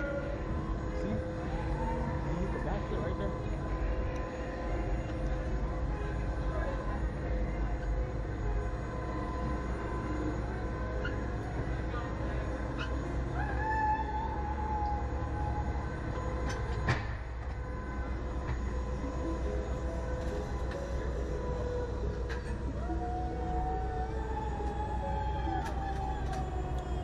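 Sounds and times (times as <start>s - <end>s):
faint mechanical whine: 0.0s - 27.0s
ride machinery hum and rumble: 0.0s - 27.0s.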